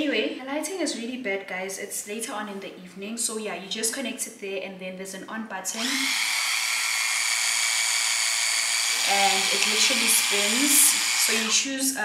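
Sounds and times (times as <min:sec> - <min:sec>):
high-pitched motor whine: 0:05.8 - 0:11.6.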